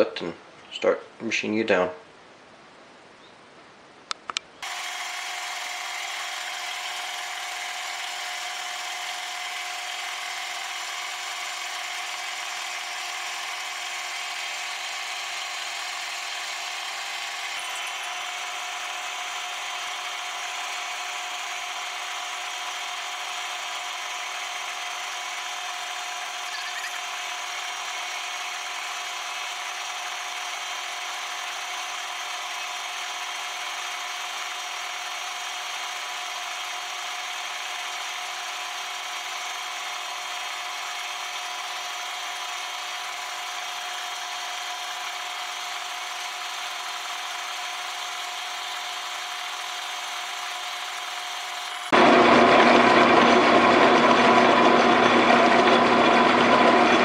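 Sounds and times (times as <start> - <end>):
metal lathe cutting steel: 4.6 - 57.0
high whine: 17.4 - 18.3, 26.5 - 27.2.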